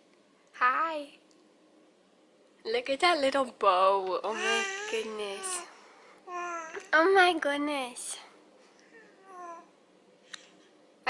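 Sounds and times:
baby cooing: 4.3s - 5.7s, 6.3s - 6.9s, 9.0s - 9.7s.

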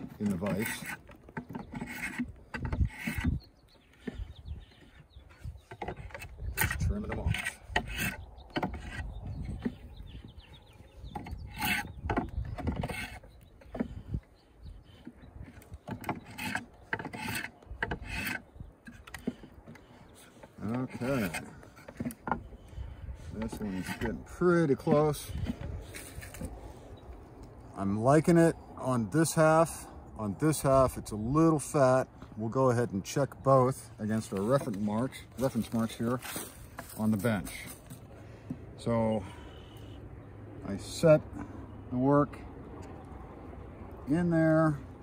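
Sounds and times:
draw knife scraping wood: 0.0s - 9.9s, 11.0s - 14.2s, 14.9s - 26.7s, 34.2s - 38.0s.

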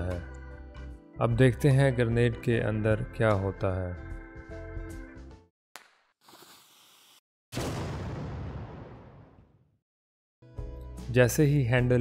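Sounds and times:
loud explosion: 7.6s - 9.6s.

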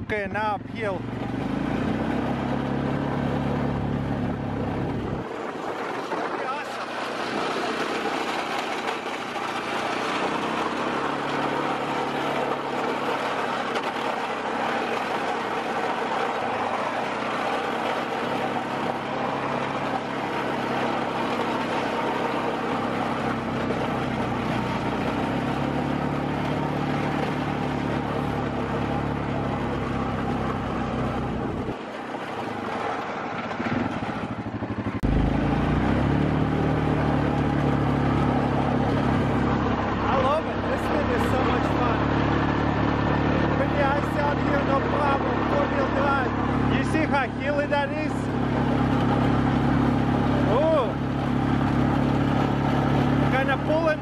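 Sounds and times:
quad bike engine running: 0.0s - 54.0s.

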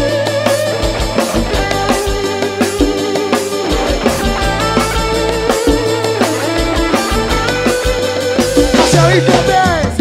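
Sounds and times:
bass: 0.0s - 10.0s
electric guitar lead line: 0.0s - 10.0s
steady drum beat: 0.0s - 10.0s.

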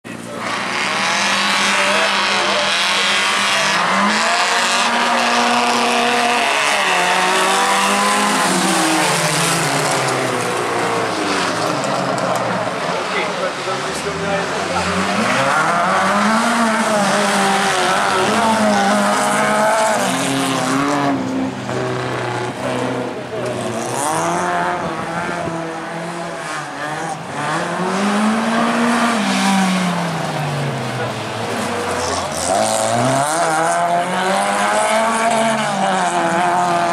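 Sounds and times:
race car engines revving: 0.0s - 36.9s.

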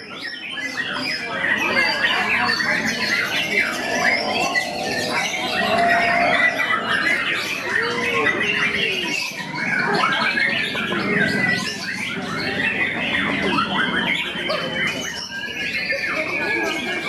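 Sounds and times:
people's voices: 0.0s - 17.0s
songbirds singing: 0.0s - 17.0s.

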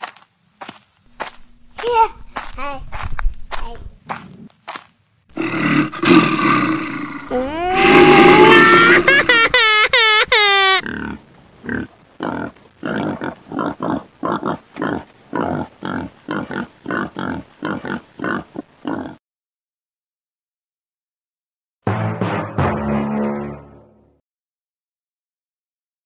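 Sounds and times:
animal roar: 5.4s - 9.2s.

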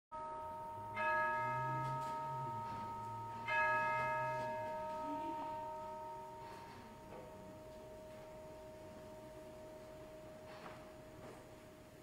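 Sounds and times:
bell ringing: 0.2s - 12.0s.

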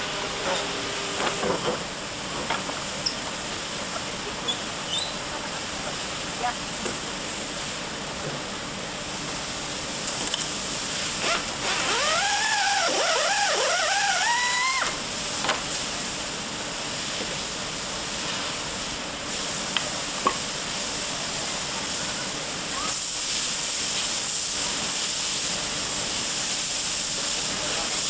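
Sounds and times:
factory machinery hiss: 0.0s - 28.0s
power tool motor whining: 11.2s - 14.9s.

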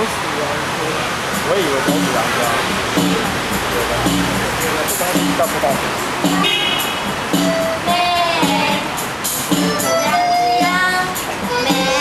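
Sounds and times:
bamboo flute melody: 6.2s - 12.0s
woman singing high: 7.5s - 9.0s, 9.6s - 12.0s.

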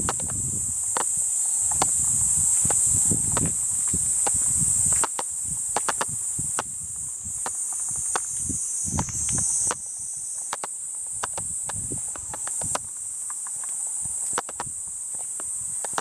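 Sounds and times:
footsteps on garden path: 0.0s - 16.0s
high-pitched insect chorus: 0.0s - 16.0s.

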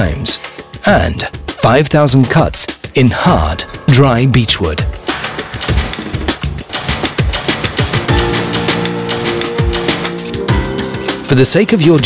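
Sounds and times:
background music: 0.0s - 12.0s
rapid mechanical clicking: 5.0s - 10.4s.

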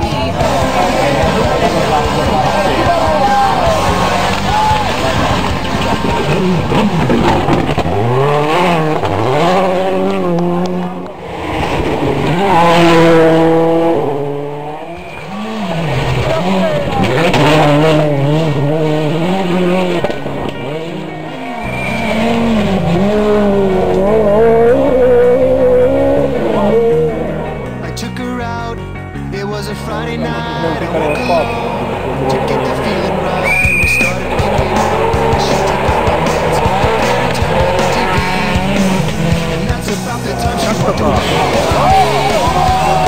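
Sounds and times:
rally car engines revving: 0.0s - 43.0s.

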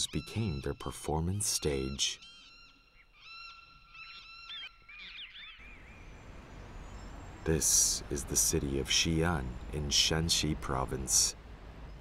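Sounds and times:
wild birds calling in flight: 0.0s - 7.6s
low rumble of city traffic: 5.4s - 12.0s.

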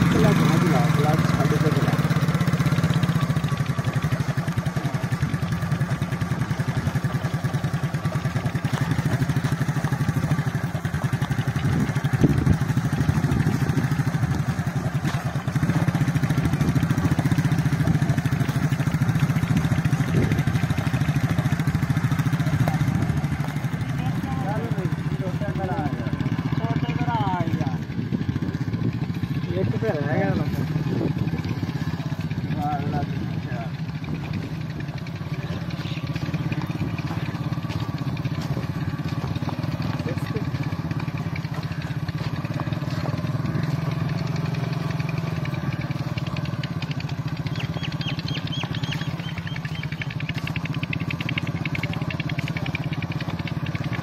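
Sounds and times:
motorcycle engine running: 0.0s - 54.0s.

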